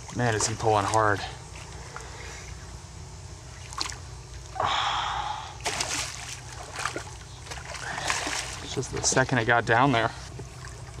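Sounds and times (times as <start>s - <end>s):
hard breath: 4.6s - 5.6s
fish splashing at water surface: 5.6s - 9.1s.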